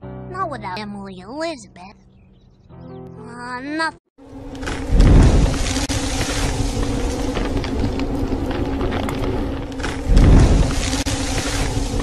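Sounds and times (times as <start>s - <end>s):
steady low drone: 4.2s - 12.0s
deep booming whoosh: 4.6s - 8.4s, 9.3s - 12.0s.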